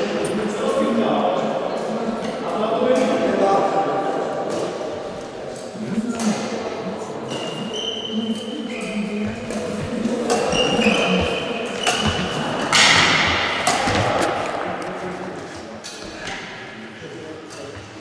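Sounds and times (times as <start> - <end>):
voices echoing in a hall: 0.0 - 18.0
short high squeaks: 7.3 - 9.0
rackets hitting shuttlecock: 9.5 - 14.7.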